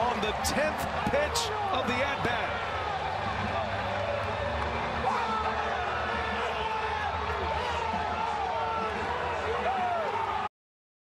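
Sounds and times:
men shouting in celebration: 0.1 - 10.4.

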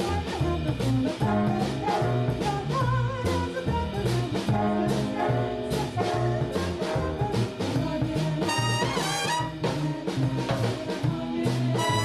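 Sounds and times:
swing big band playing: 0.0 - 12.0
women singing close harmony: 0.0 - 12.0.

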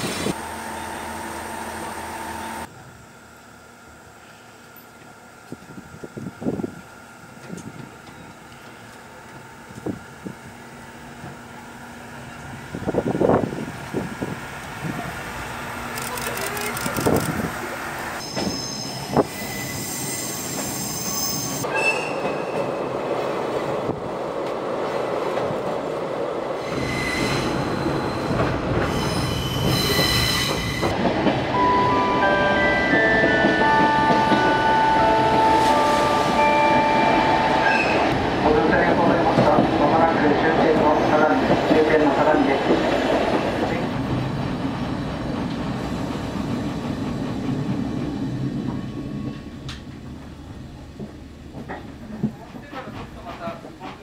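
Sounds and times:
diesel railcar rumble: 0.0 - 54.0.

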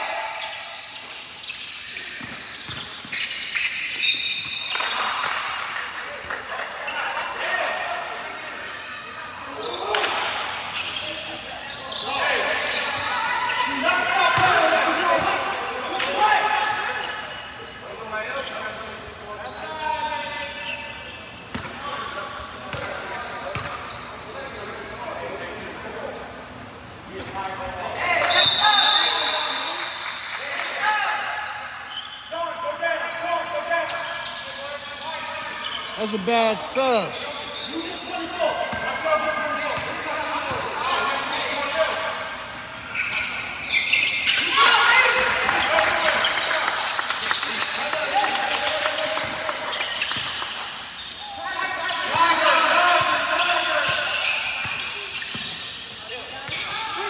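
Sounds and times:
voices echoing in gym: 0.0 - 57.0.

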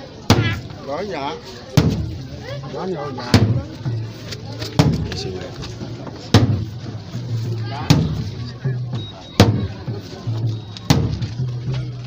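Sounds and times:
large drums booming: 0.3 - 0.7, 1.7 - 2.3, 3.3 - 4.0, 4.8 - 5.2, 6.1 - 7.1, 7.7 - 11.5.

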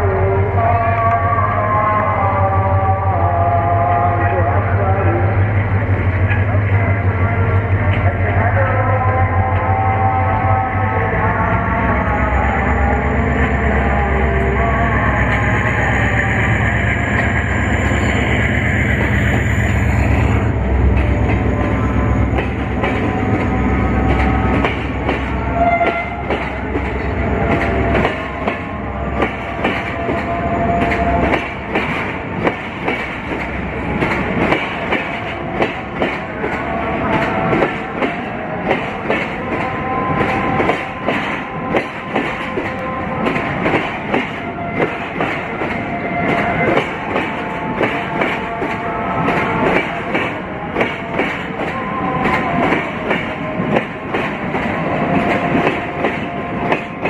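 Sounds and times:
diesel locomotive rumble: 0.0 - 57.0
train wheels clacking on rails: 16.6 - 57.0.

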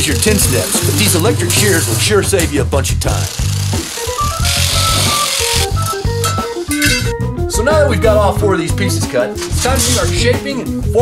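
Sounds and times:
electric metal shear cutting: 0.0 - 7.1
background music: 0.0 - 11.0.

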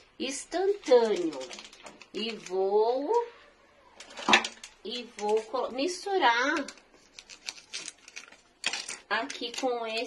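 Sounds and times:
packet rustling: 0.7 - 2.8, 4.0 - 10.0
foil sachet clicking and crinkling: 0.8 - 3.2, 4.0 - 10.0.

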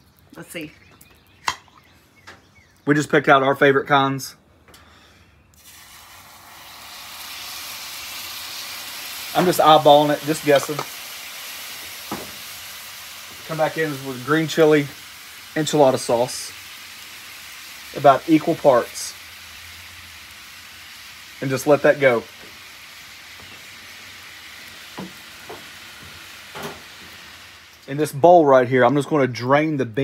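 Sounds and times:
sauce sizzling in a skillet: 5.6 - 27.9.

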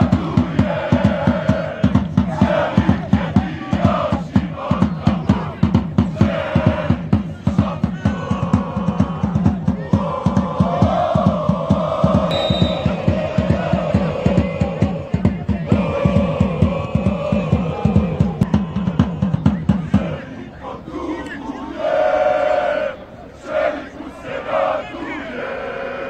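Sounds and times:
bass drum beat: 0.0 - 20.1
crowd chanting in unison: 0.0 - 26.0.

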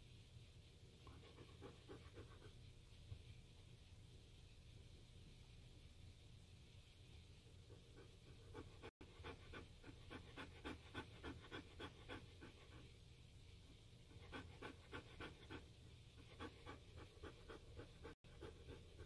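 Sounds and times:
dog panting: 1.1 - 2.6, 7.6 - 13.0, 14.1 - 19.0.

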